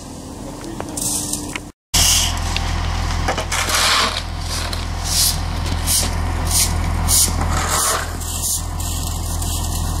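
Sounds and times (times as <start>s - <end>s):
shovel and rake scraping asphalt: 0.9s - 2.5s, 3.3s - 10.0s
diesel engine idling: 2.0s - 10.0s.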